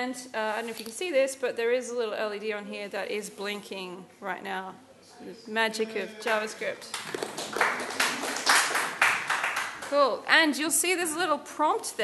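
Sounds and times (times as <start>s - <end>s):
audience applauding: 6.9s - 10.0s.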